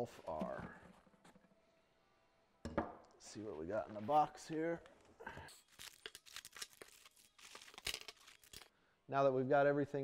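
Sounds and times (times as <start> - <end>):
plastic packaging crinkling: 5.6 - 8.7.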